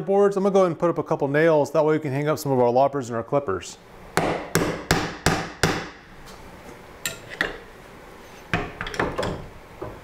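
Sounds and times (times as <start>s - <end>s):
hammer hitting nail into wood: 4.2s - 6.0s.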